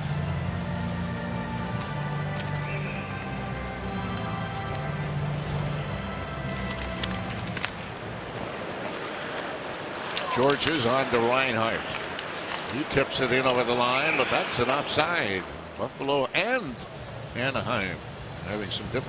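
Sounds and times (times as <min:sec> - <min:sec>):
crowd noise: 0:00.9 - 0:19.0
hockey sticks clacking on ice: 0:01.6 - 0:02.7, 0:06.5 - 0:16.4.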